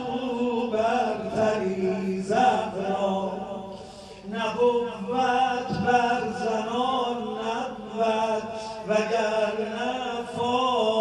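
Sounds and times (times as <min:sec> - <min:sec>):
man chanting through loudspeaker: 0:00.0 - 0:11.0.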